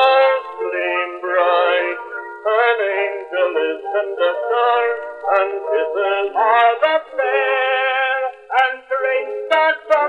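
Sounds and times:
man singing on old recording: 0:00.0 - 0:10.0.

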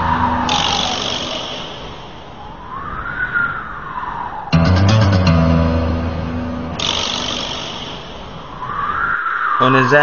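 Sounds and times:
siren-like wailing tone: 0:00.0 - 0:04.9.

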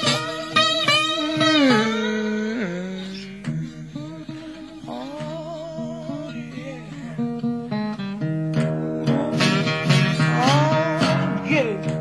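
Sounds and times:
blues guitar playing: 0:00.0 - 0:12.0.

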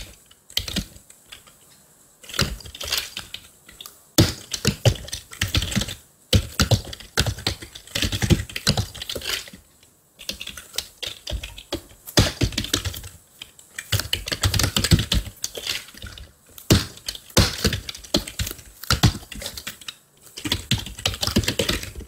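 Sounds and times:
computer keyboard typing: 0:04.3 - 0:09.5, 0:13.8 - 0:22.0.

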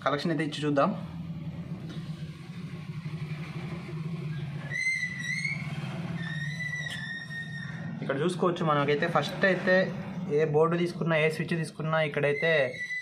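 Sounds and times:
steady low hum: 0:00.0 - 0:12.1.

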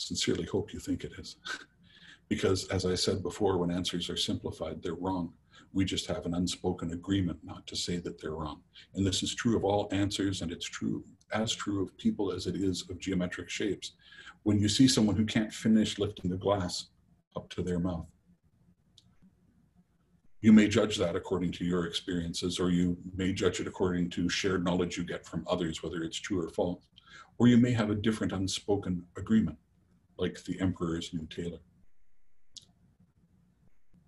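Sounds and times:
faint low room hum: 0:00.0 - 0:34.0.

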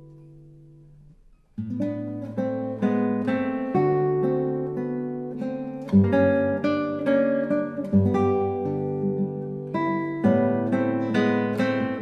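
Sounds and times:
classical guitar fingerstyle melody: 0:00.0 - 0:12.0.

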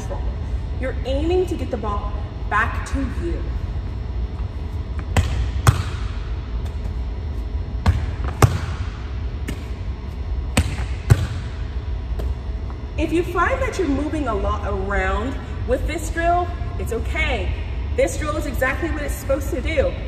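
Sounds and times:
steady low hum: 0:00.0 - 0:20.0
volleyball smacking forearms and wall: 0:05.0 - 0:06.8, 0:07.8 - 0:09.9, 0:10.5 - 0:11.6.

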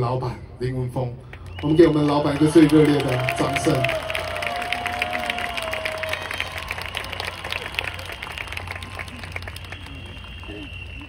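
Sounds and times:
crowd applauding: 0:01.3 - 0:11.0.

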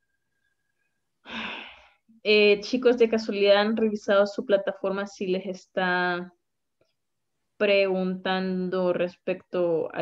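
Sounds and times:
sigh-like breath: 0:01.2 - 0:02.0.

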